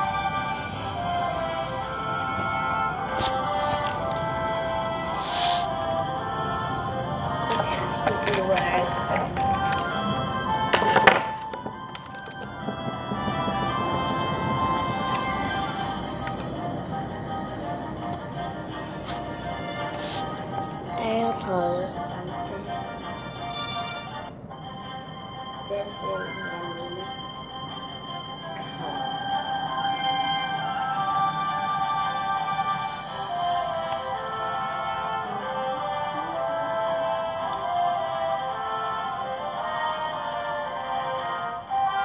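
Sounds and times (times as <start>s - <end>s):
background music: 0.0s - 42.0s
person speaking: 5.1s - 5.7s, 20.0s - 20.3s, 25.7s - 27.2s.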